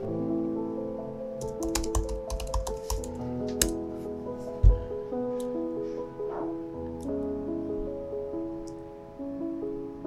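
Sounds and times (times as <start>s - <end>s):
soft background music: 0.0s - 10.0s
laptop keyboard typing: 1.4s - 3.8s.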